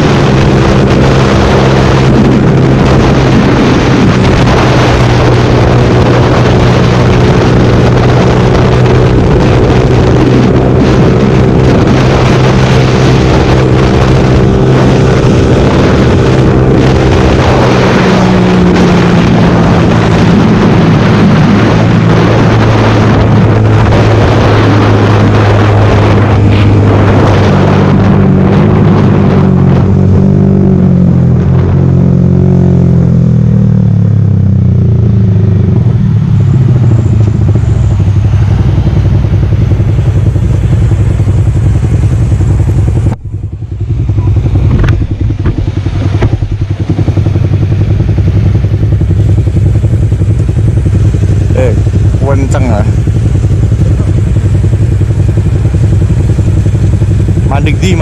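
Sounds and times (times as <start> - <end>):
motorcycle engine slowing and idling: 0.0 - 58.0.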